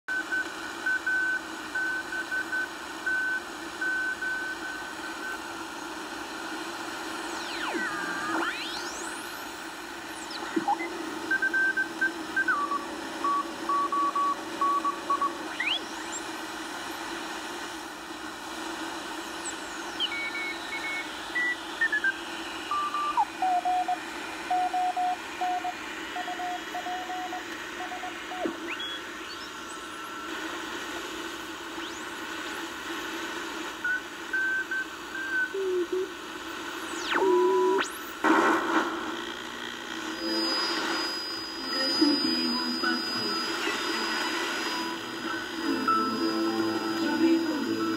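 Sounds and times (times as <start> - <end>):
static hiss: 4.5 - 47.9
morse code beeps: 10.3 - 16.2, 20.0 - 30.3, 40.2 - 47.9.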